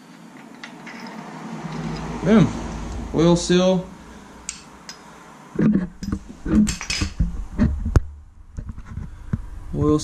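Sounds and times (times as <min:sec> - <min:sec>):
metallic clinks and knocks: 0:00.4 - 0:02.2, 0:05.9 - 0:07.3.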